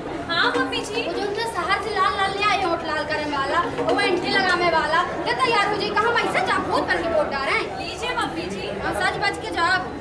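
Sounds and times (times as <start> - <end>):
voices talking over each other: 0.0 - 10.0.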